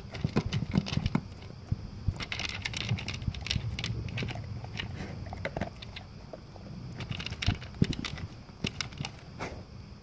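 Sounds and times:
dog chewing dry kibble: 0.0 - 9.3.

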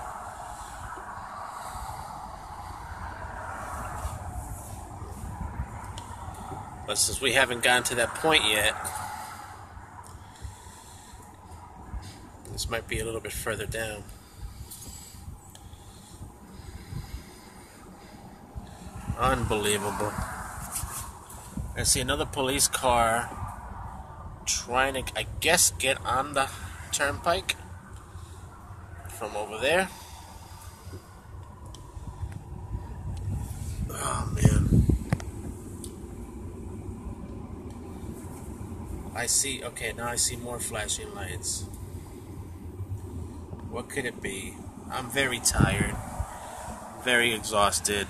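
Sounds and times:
car engine and road noise: 0.0 - 48.0.

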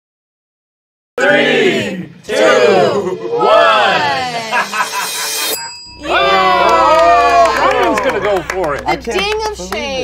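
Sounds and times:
people shouting and cheering: 1.2 - 9.2.

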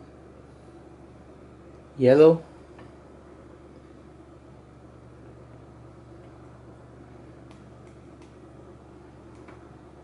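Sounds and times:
computer fans humming: 0.0 - 10.0.

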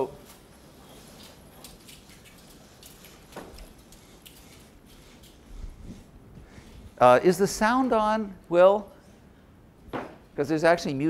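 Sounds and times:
small rustles: 0.0 - 7.0.

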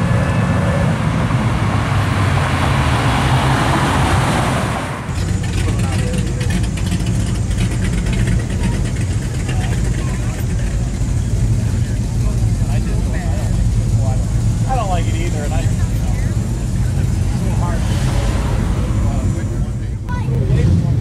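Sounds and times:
car engine idling: 4.7 - 21.0
voices talking: 5.1 - 21.0.

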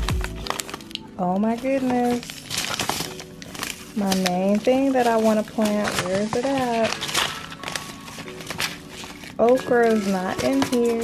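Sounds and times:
paper packets rustling: 0.0 - 11.0.

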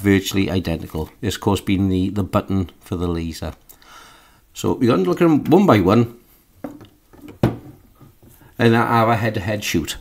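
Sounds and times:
crossbow handling knocks on table: 6.6 - 7.8.

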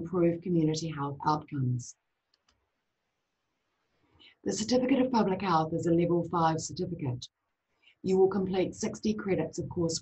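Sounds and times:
faint clicks: 2.3 - 2.7.

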